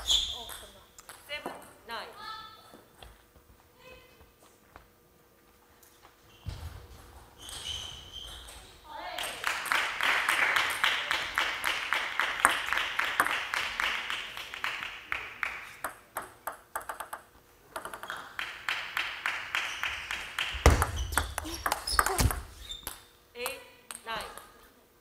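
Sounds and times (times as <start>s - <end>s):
table tennis ball bouncing: 12.4s - 13.6s, 15.4s - 24.5s.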